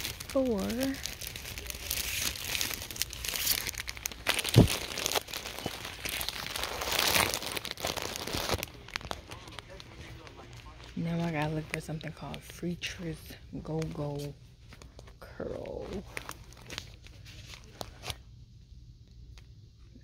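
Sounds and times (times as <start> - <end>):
plastic wrappers crinkling: 0.0 - 12.6, 13.3 - 18.2.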